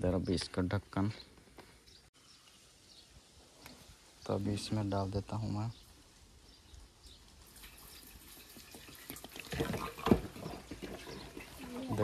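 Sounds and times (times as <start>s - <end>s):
petrol pouring into fuel tank: 7.5s - 12.0s.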